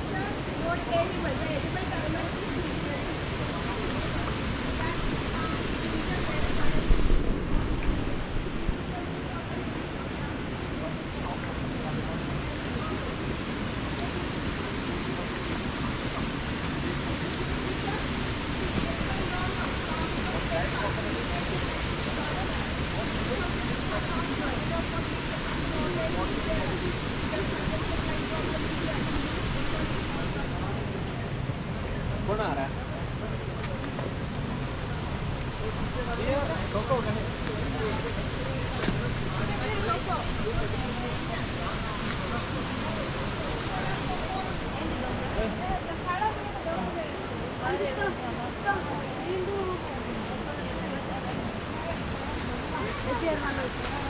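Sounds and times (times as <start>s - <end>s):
steady rushing noise: 0.0s - 54.0s.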